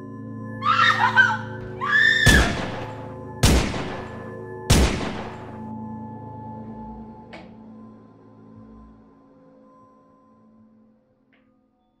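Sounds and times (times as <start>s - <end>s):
droning horror film score: 0.0s - 10.6s
high-pitched screams: 0.6s - 2.6s.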